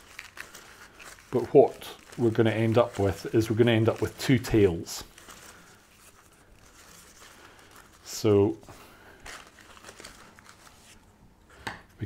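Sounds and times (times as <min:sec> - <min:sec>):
ribbon and bouquet rustling: 0:00.0 - 0:11.2.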